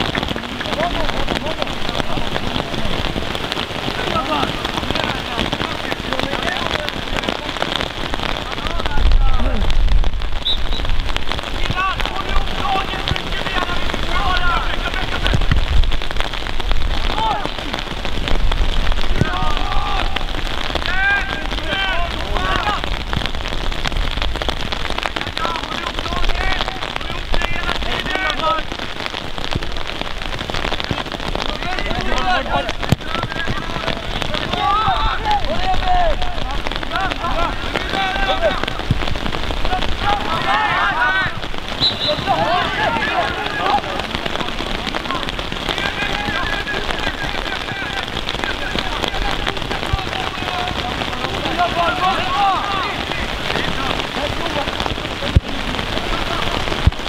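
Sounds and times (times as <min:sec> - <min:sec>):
steady rain falling: 0:00.0 - 0:57.0
distant shouts of players: 0:19.1 - 0:23.0, 0:31.0 - 0:54.8.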